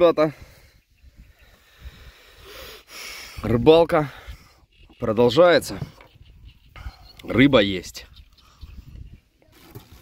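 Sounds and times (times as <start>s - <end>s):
person breathing: 0.4s - 3.4s.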